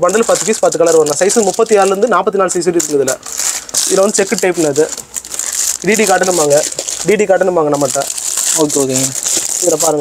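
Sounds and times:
man speaking: 0.0 - 5.1, 5.8 - 10.0
plastic packets crinkling: 0.0 - 10.0.

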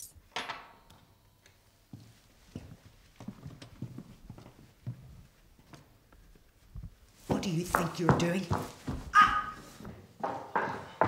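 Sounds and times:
footsteps on hard floor: 1.9 - 11.0.

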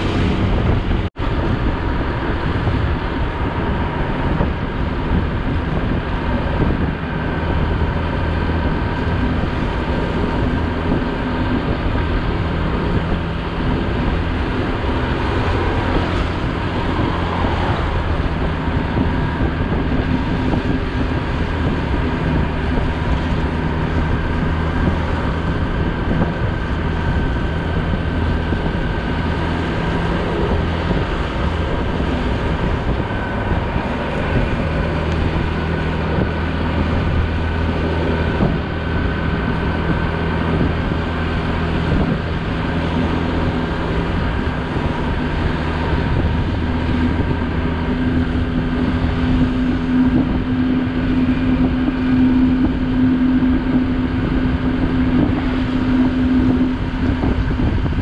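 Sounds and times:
motorcycle engine running: 0.0 - 58.0
wind noise on microphone: 0.0 - 58.0.

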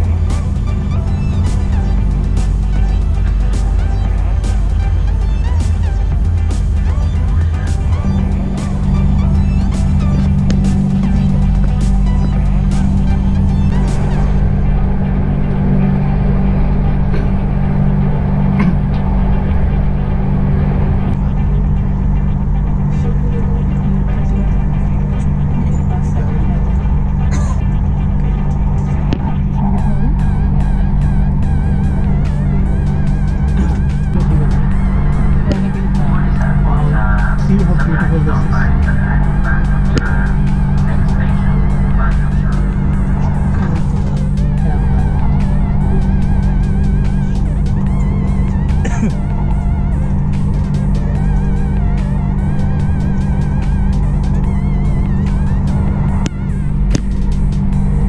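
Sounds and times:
train hum and rumble: 0.0 - 58.0.

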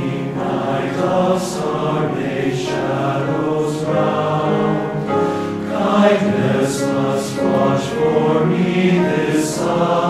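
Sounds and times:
men's chorus singing: 0.0 - 10.0.

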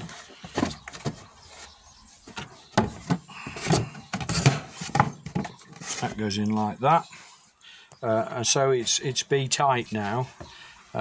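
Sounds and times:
board scraping and knocking on wood: 0.0 - 6.2.

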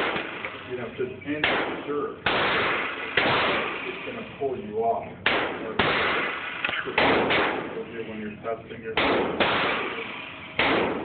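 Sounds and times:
pistol shots echoing indoors: 1.4 - 3.9, 5.2 - 7.8, 9.0 - 11.0.

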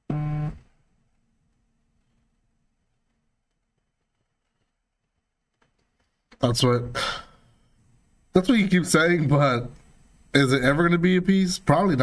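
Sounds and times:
short buzzing tone: 0.1 - 0.6.

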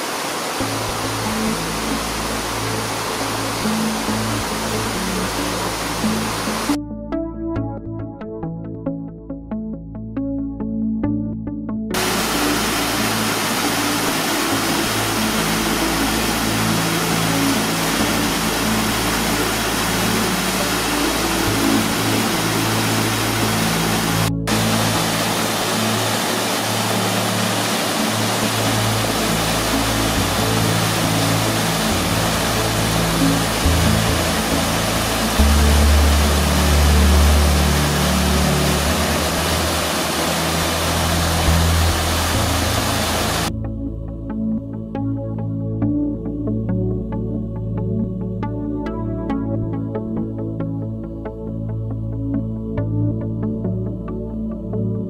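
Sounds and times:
waterfall and stream rushing: 0.0 - 6.8, 12.0 - 43.5
slow background music: 0.0 - 55.0.

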